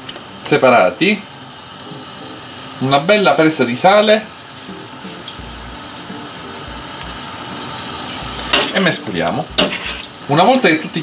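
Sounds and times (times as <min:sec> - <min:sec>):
seafood sizzling in a wok: 0:00.0 - 0:11.0.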